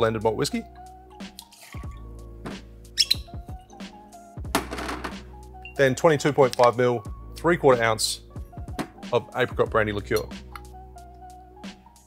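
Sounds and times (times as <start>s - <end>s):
background music: 0.0s - 12.0s
whisky pouring: 1.4s - 2.1s.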